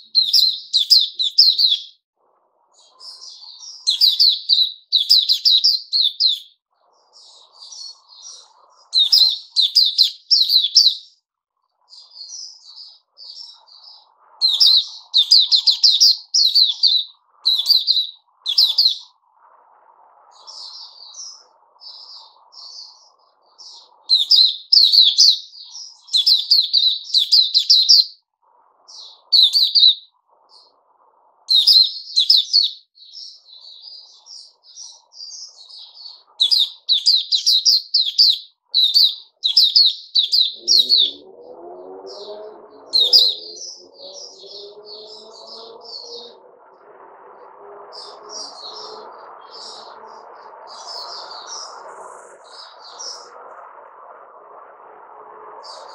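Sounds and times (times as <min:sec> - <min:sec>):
bird twittering song: 0:00.0 - 0:02.0, 0:02.6 - 0:19.5, 0:20.2 - 0:54.1, 0:55.4 - 0:55.9.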